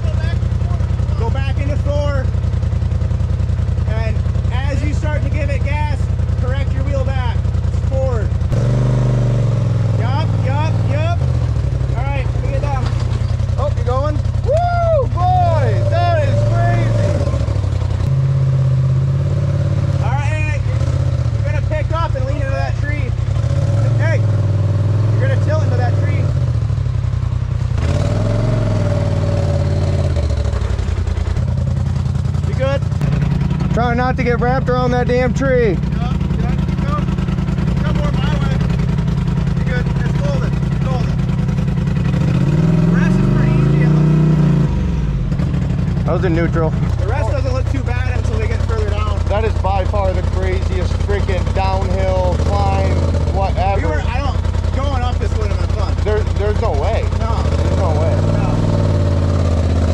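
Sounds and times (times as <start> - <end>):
engine running at low revs: 0.0 - 59.9.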